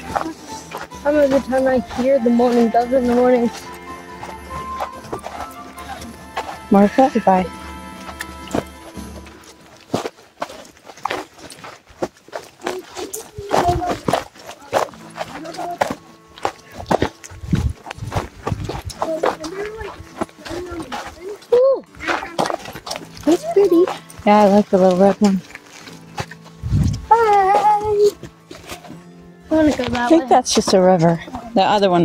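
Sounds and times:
voices: 0:00.0 - 0:09.6, 0:12.6 - 0:16.0, 0:18.8 - 0:26.1, 0:29.5 - 0:32.0
faint music: 0:00.0 - 0:32.0
footsteps on stony dirt: 0:00.0 - 0:32.0.

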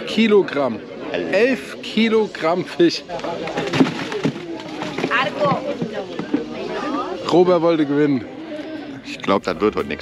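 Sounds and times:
people talking at once: 0:00.0 - 0:10.0.

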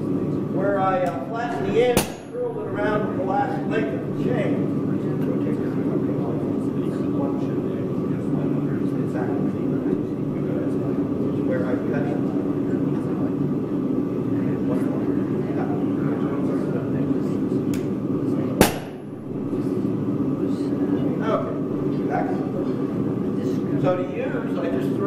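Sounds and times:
gas forge burner roaring: 0:00.0 - 0:25.0.

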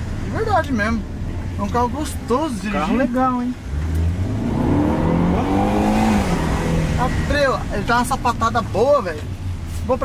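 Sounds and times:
car engine accelerating: 0:00.0 - 0:10.0.

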